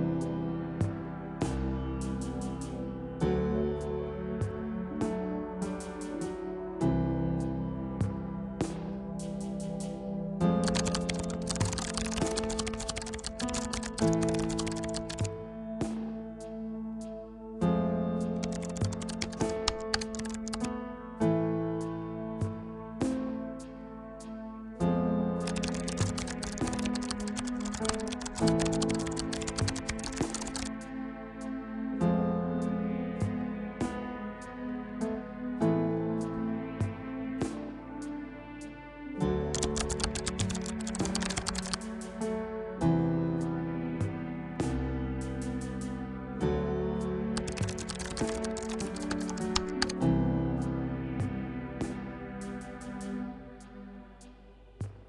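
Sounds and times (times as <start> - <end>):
soft background music: 0.0 - 55.0
computer keyboard typing clicks: 10.6 - 15.3, 18.4 - 20.7, 25.4 - 30.7, 39.5 - 41.9, 47.4 - 50.0.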